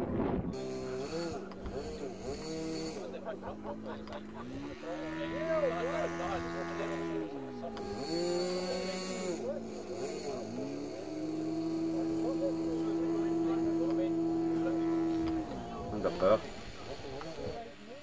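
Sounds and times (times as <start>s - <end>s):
model plane engine revving: 0.6s - 18.0s.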